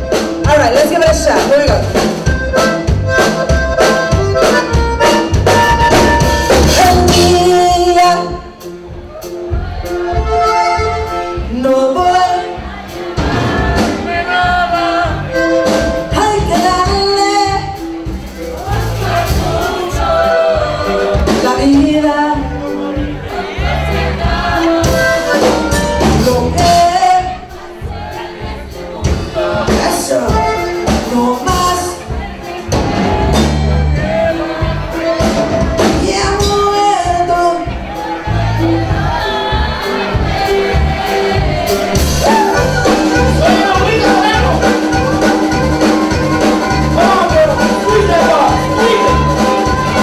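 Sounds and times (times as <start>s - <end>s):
button accordion: 0.0s - 8.7s, 9.6s - 36.5s, 38.1s - 50.0s
drum kit beat: 0.0s - 50.0s
electric bass: 0.0s - 50.0s
live band playing through speakers: 0.0s - 50.0s
person singing: 28.8s - 50.0s.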